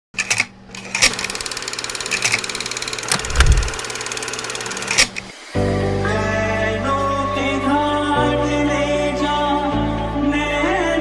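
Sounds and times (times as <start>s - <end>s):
fast mechanical ticking: 0.2s - 5.3s
music with held tones: 5.3s - 11.0s.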